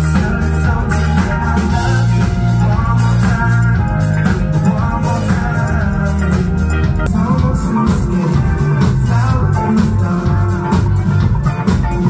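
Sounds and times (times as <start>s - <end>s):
bass: 0.0s - 12.0s
drum kit: 0.0s - 12.0s
electric guitar: 0.0s - 12.0s.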